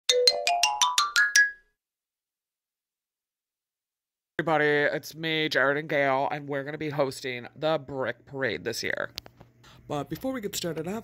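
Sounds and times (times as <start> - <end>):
climbing musical jingle: 0.1 - 1.7.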